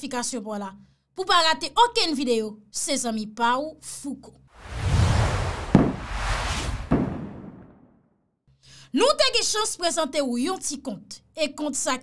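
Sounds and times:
noisy whoosh: 4.6 - 7.9
sharp hits: 4.8 - 7.9.

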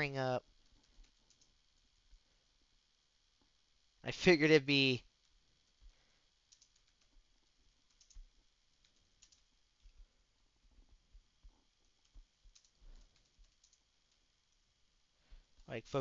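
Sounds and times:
keyboard and mouse clicks: 0.6 - 1.6, 6.5 - 7.2, 7.9 - 9.5, 12.0 - 14.2.

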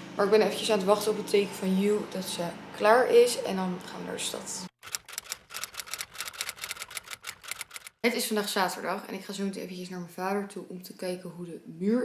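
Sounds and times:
typewriter key clicks: 4.8 - 7.9.

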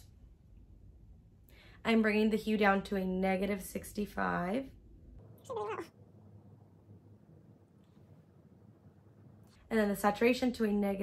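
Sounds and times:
cat meowing: 5.4 - 5.9.

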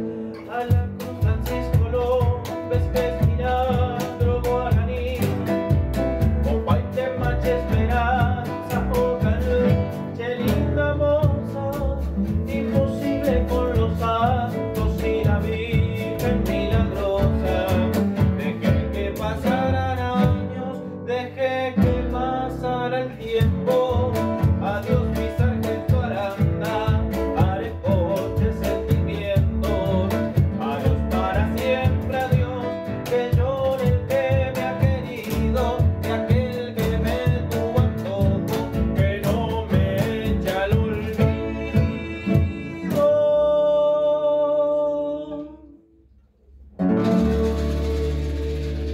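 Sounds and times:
man singing: 0.0 - 45.8
classical guitars: 0.0 - 46.0, 46.6 - 48.9
double bass: 0.0 - 48.9
drum beaten with sticks: 0.6 - 20.5, 23.4 - 43.1, 46.8 - 48.9.

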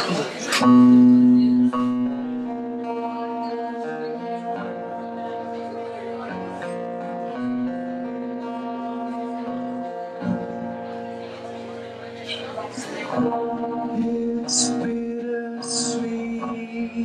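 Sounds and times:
acoustic guitar chords: 0.0 - 17.0.

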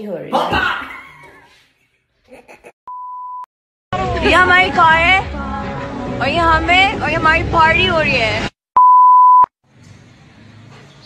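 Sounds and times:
woman's voice: 4.1 - 5.3, 6.2 - 8.5
electronic beep: 8.8 - 9.5.

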